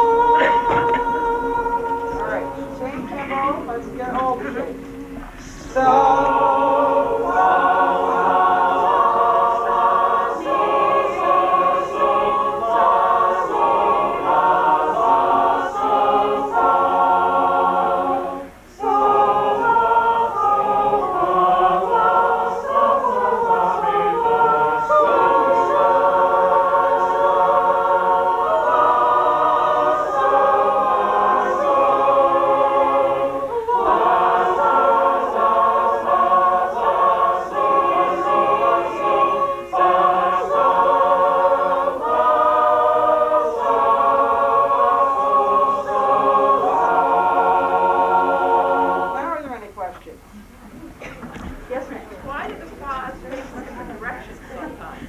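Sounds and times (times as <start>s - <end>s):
group singing a cappella: 0.0s - 49.5s.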